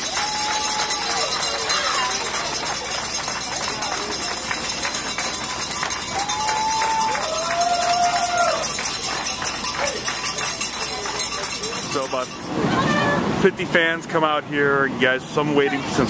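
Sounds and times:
crowd clapping and cheering: 0.0s - 12.8s
long drawn-out cheering calls: 0.0s - 13.3s.

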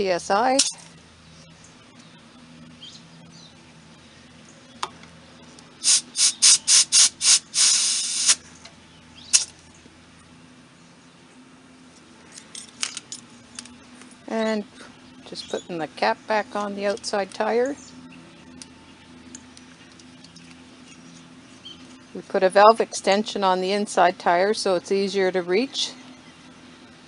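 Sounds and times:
compressed air hissing at tyre valve: 5.8s - 8.5s.

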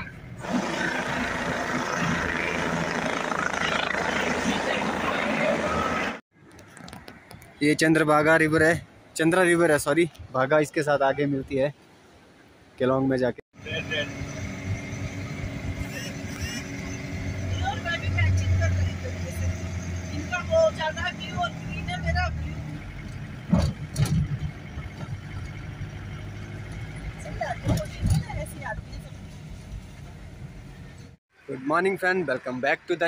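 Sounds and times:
car engine and tyre rumble: 13.6s - 32.8s.

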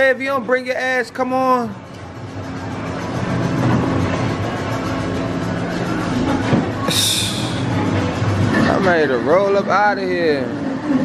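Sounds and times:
background music: 0.0s - 11.0s
indistinct room noise: 0.0s - 11.0s.

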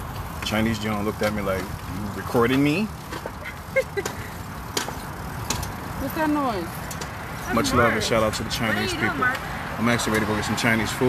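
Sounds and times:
pedal cart rolling on pavement: 0.0s - 11.0s.

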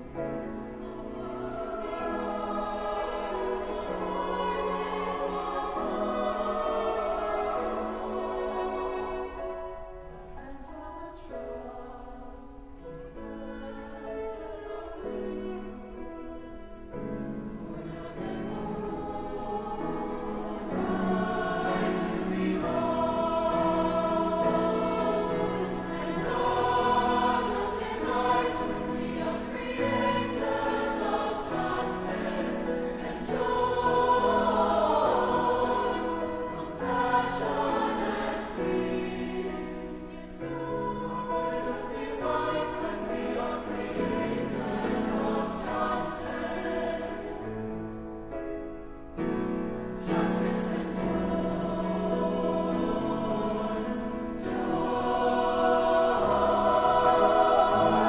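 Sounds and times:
mixed choir singing: 0.0s - 48.1s, 49.2s - 58.0s.

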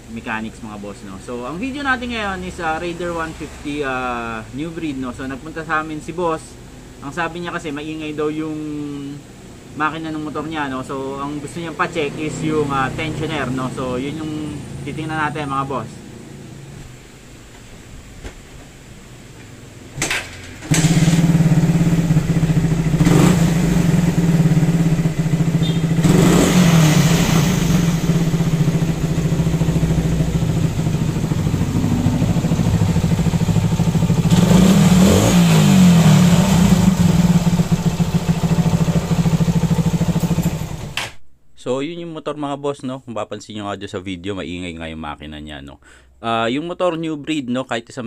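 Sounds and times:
motorcycle engine revving: 20.6s - 41.0s.

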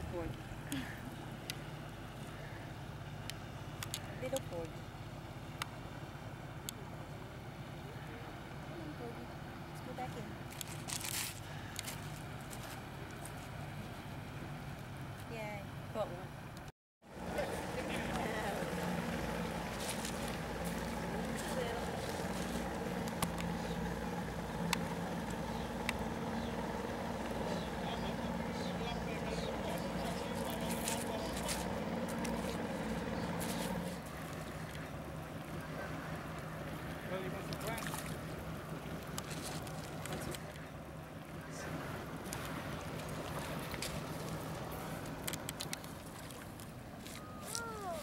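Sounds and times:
motorboat engine running: 0.0s - 48.0s.

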